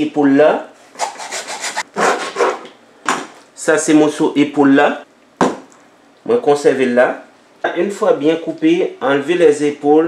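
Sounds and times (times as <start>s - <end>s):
hacksaw cutting bone: 1.0s - 2.7s.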